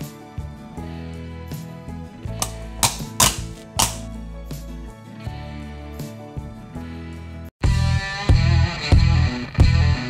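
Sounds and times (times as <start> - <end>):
background music: 0.0 - 10.0
switch cover snapping on: 2.4 - 4.0.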